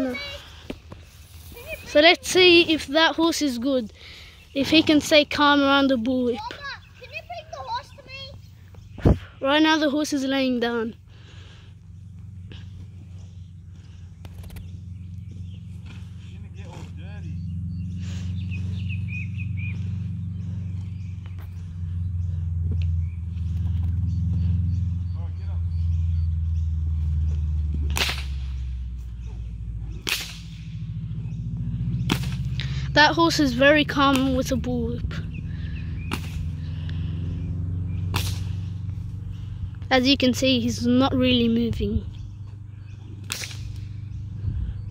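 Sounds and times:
steady low rumble: 0:00.0 - 0:44.9
bullwhip cracking: 0:27.7 - 0:28.8, 0:29.8 - 0:30.9, 0:32.0 - 0:32.7, 0:36.0 - 0:36.6, 0:38.0 - 0:38.9, 0:43.2 - 0:44.0.

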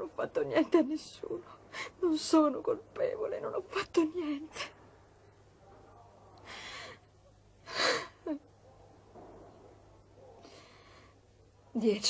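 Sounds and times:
woman sobbing breaths: 0:06.5 - 0:08.4.

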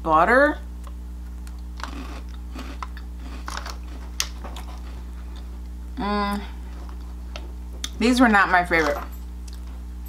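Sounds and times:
crunchy snack being chewed: 0:00.8 - 0:05.7.

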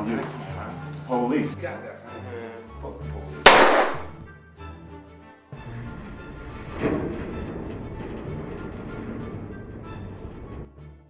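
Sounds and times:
background music sustained tones: 0:00.0 - 0:11.0.

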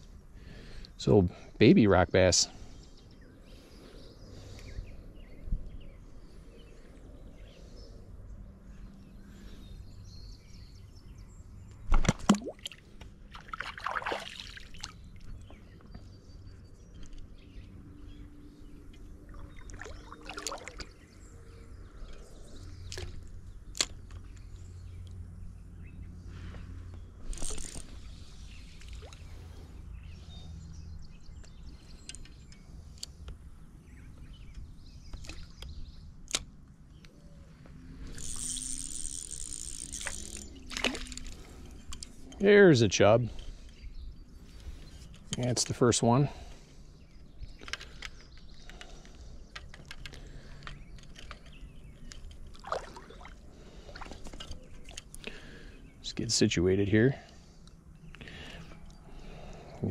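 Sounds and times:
creek water lapping: 0:12.3 - 0:15.3, 0:19.3 - 0:21.1, 0:52.5 - 0:55.8
fishing reel clicks: 0:27.3 - 0:27.9, 0:38.1 - 0:41.4
fish splashing: 0:52.6 - 0:54.2.

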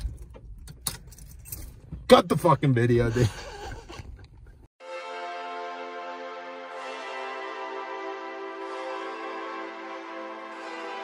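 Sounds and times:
keys jangling on a ring: 0:01.0 - 0:01.8.

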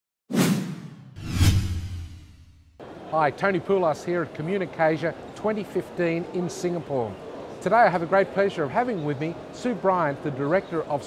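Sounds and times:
whoosh sound effects: 0:00.3 - 0:02.7.

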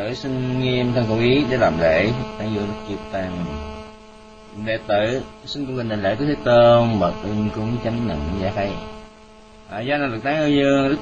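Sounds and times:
man chanting: 0:00.0 - 0:03.6, 0:04.6 - 0:08.9
electrical mains hum: 0:00.0 - 0:11.0.

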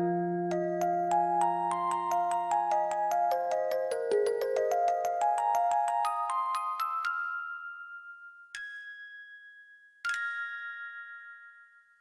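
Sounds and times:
music box melody: 0:00.1 - 0:12.0.

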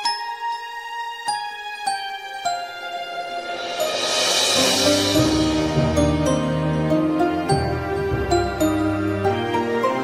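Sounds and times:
orchestral instrumental music: 0:00.0 - 0:10.0.

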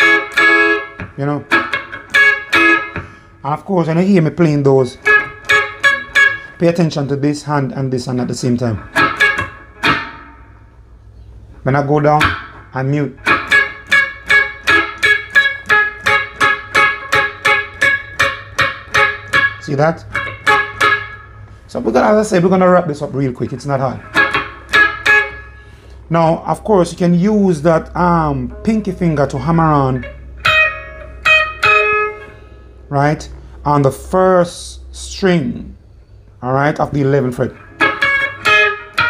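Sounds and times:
muted reggae guitar chops: 0:00.0 - 0:33.8, 0:36.8 - 0:39.0.

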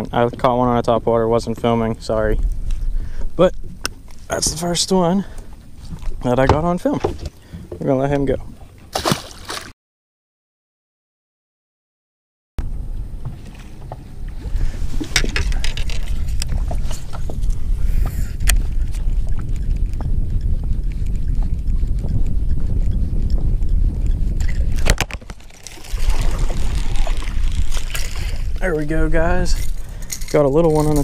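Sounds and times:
wind buffeting microphone: 0:00.0 - 0:08.9, 0:12.6 - 0:31.0
water splashing: 0:08.6 - 0:09.7, 0:24.4 - 0:31.0
fishing tackle clicks and knocks: 0:15.0 - 0:20.1, 0:29.5 - 0:31.0.

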